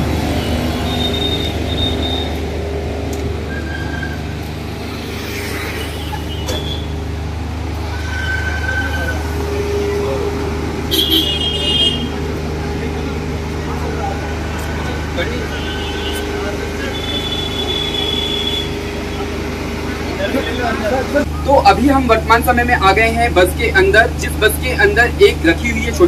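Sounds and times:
road traffic: 0:00.0 - 0:26.0
vehicle engine idling: 0:00.0 - 0:26.0.

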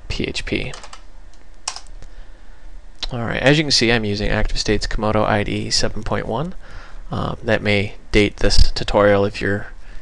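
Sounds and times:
faint steady hum: 0:00.0 - 0:10.0
computer keyboard keystrokes: 0:00.7 - 0:01.9.

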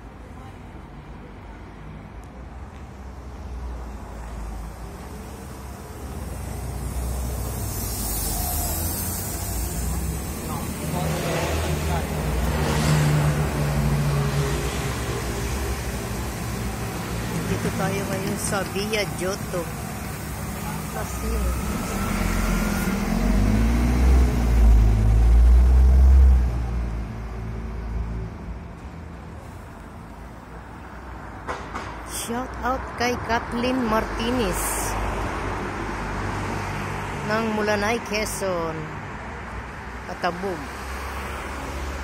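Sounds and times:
city street rumble: 0:00.0 - 0:42.0
bus engine running: 0:04.0 - 0:31.0.

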